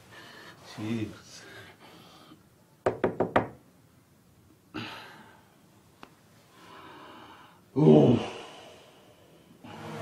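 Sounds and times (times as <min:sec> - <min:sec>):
knocks on a door: 0:02.8 - 0:03.6.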